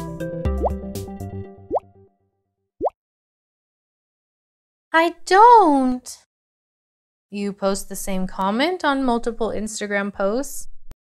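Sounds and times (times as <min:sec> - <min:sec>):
rising pop sound effects: 0:00.6 - 0:00.8, 0:01.7 - 0:01.9.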